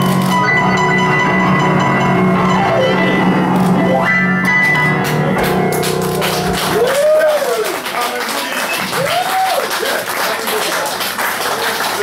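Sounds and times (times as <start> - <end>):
upright piano chords: 0.0 - 7.9.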